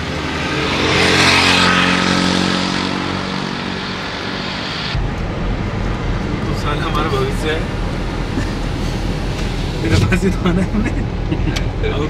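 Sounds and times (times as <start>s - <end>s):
car engine and road noise: 0.0s - 12.0s
wind: 0.0s - 12.0s
car cabin rumble: 5.0s - 12.0s.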